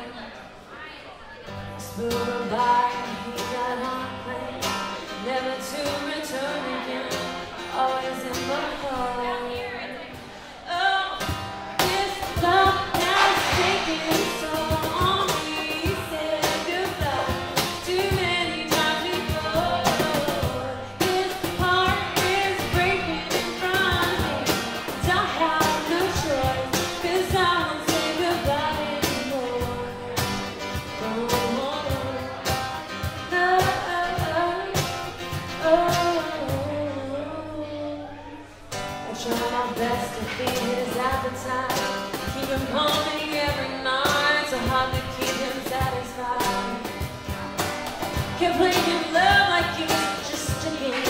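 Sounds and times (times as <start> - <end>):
acoustic guitar: 0.0 - 51.0
woman singing: 1.5 - 51.0
cajon beat: 11.2 - 36.8, 38.7 - 51.0.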